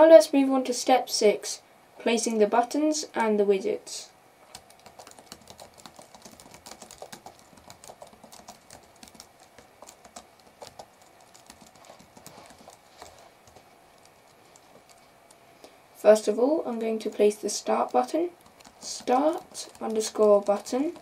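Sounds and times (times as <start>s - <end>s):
computer keyboard typing: 4.5s - 15.1s, 16.7s - 21.0s.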